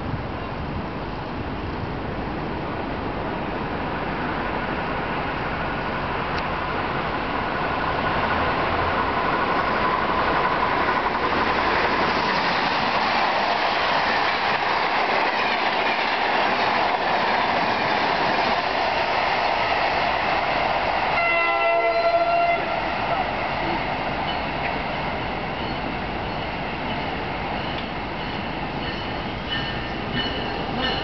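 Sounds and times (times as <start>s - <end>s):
train passing at speed: 0.0s - 31.0s
train horn: 21.1s - 23.3s.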